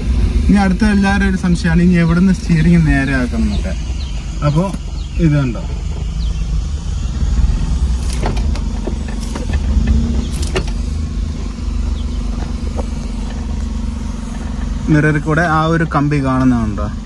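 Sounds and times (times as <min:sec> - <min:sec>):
car engine humming: 0:00.0 - 0:17.0.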